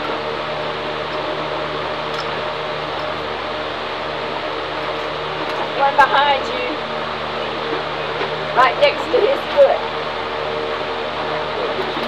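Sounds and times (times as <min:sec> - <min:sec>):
electric fan whirring: 0:00.0 - 0:12.0.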